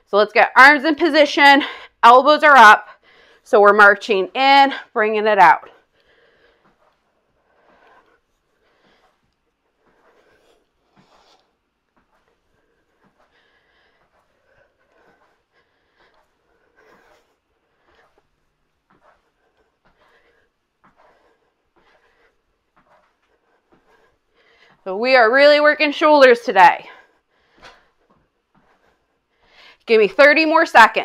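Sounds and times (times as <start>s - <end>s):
woman breathing rhythmically: 0.8s - 2.0s, 2.7s - 3.5s, 5.6s - 30.6s.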